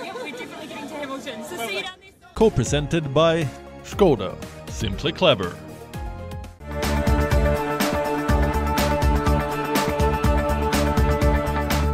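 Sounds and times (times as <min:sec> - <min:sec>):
crowd chattering: 0:00.0 - 0:02.4.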